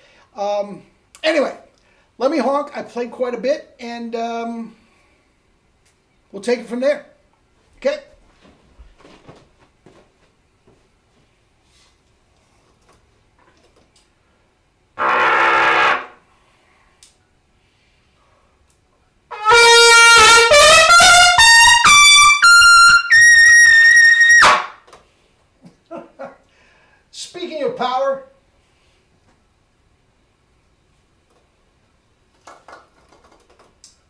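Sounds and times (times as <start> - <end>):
trumpet run to high note: 15.0 - 16.2, 19.3 - 24.8.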